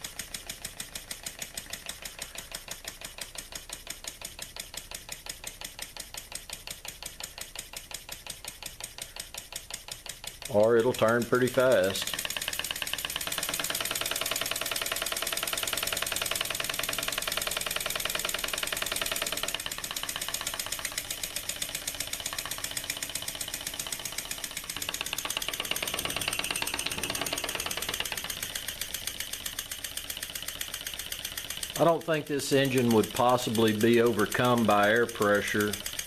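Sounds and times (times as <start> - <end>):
model air engine chuffing: 0.0 - 36.0.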